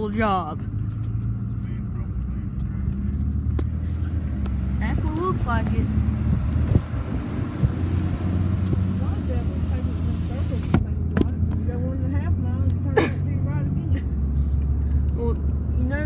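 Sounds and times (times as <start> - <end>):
car engine and tyre drone: 0.0 - 16.0.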